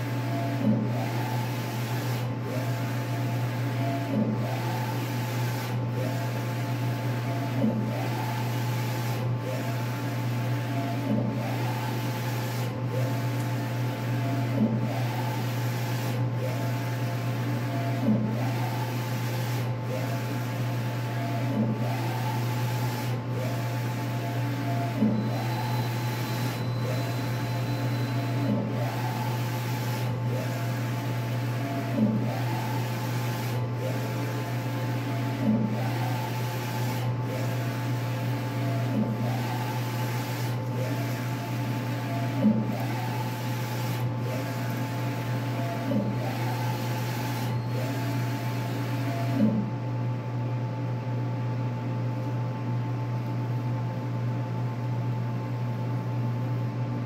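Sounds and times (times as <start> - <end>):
printer carriage whirring: 0.0 - 49.7.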